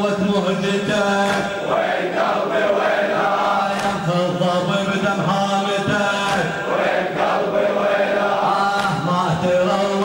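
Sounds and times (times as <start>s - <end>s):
crowd of men chanting: 0.1s - 10.0s.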